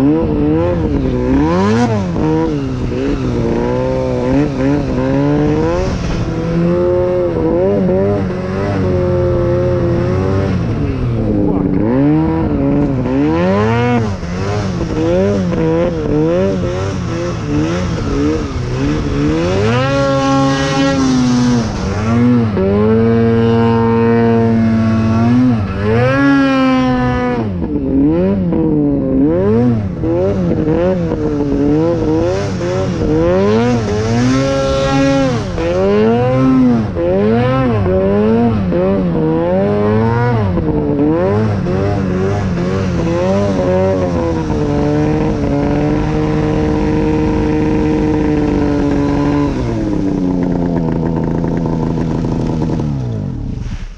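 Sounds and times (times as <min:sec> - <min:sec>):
snowmobile engine revving: 0:00.0 - 0:53.9.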